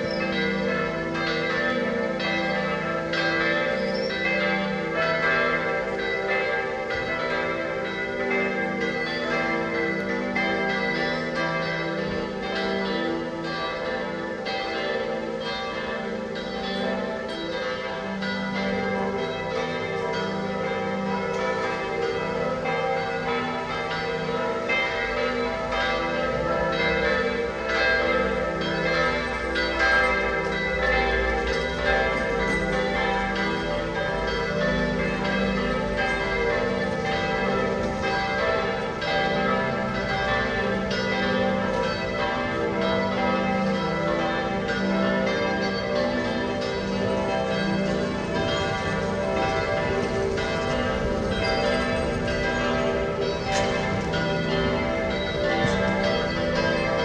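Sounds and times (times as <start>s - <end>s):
church bells pealing: 0.0s - 57.0s.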